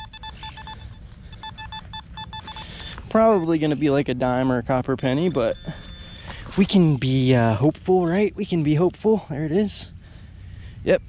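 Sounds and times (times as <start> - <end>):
metal detector short beeps: 0.0 - 7.0.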